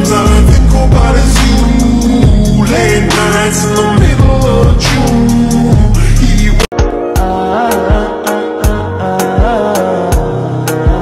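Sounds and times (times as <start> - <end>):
song with heavy bass and beat: 0.0 - 11.0.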